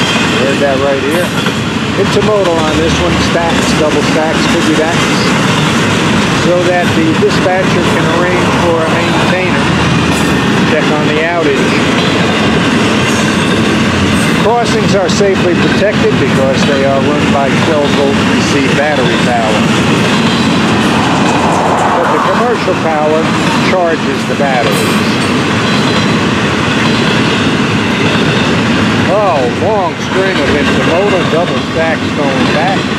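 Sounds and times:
steel wheels on rail: 0:00.0 - 0:32.9.

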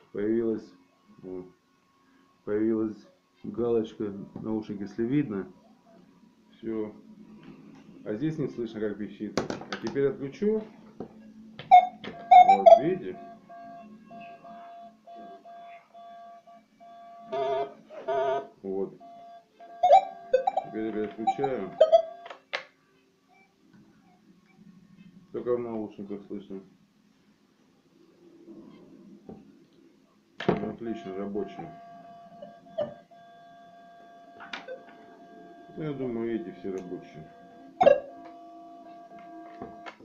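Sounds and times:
faint steady tone: 0:00.0 - 0:09.2, 0:10.1 - 0:40.0
metal detector beeping: 0:11.7 - 0:13.3, 0:19.1 - 0:22.4, 0:35.7 - 0:40.0.

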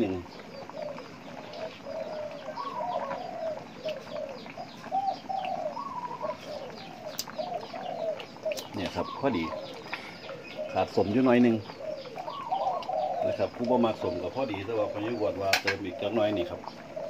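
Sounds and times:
birds calling: 0:00.0 - 0:17.0
soup pot bubbling: 0:00.0 - 0:17.0.

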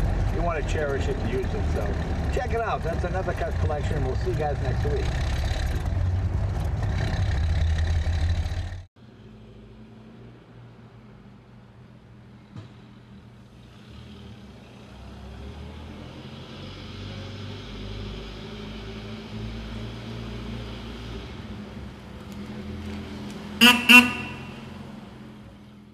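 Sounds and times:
car engine running: 0:00.0 - 0:08.8
car horn toots: 0:23.6 - 0:24.8.

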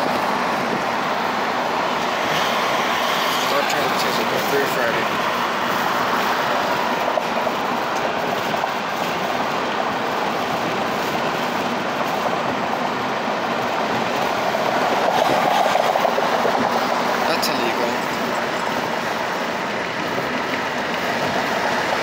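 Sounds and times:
car road and tyre noise: 0:00.0 - 0:22.0.

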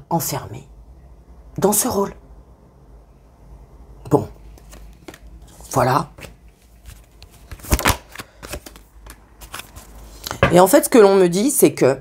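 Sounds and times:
cards shuffled and tapped: 0:04.5 - 0:10.5.

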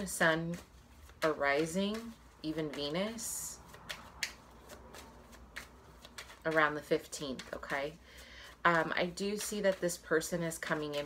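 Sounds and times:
cards being shuffled: 0:00.0 - 0:11.0
cards snapping: 0:00.5 - 0:10.0.

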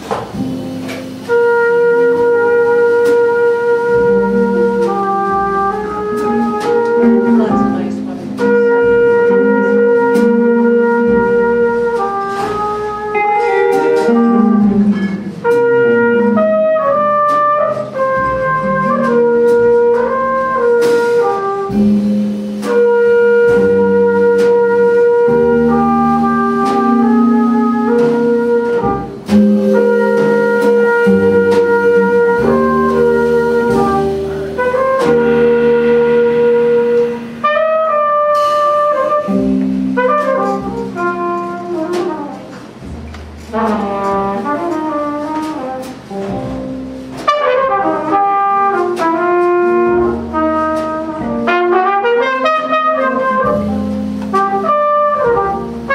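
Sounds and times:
drums with cymbals: 0:00.0 - 0:55.9
upright bass: 0:00.0 - 0:55.9
trumpet playing long notes: 0:00.6 - 0:42.9, 0:43.5 - 0:46.3, 0:47.1 - 0:55.9
electric guitar: 0:13.1 - 0:15.6.

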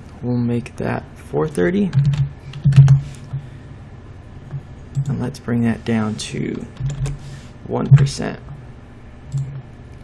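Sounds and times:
keyboard keystrokes: 0:06.8 - 0:07.2.

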